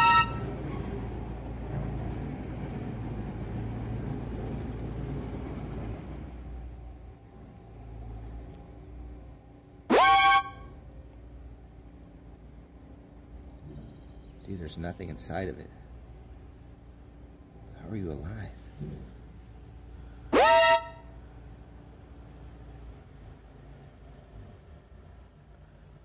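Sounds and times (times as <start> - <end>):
horn toots rising in pitch: 0.0 - 0.6, 9.9 - 10.8, 20.3 - 21.2
low outdoor rumble: 0.0 - 26.0.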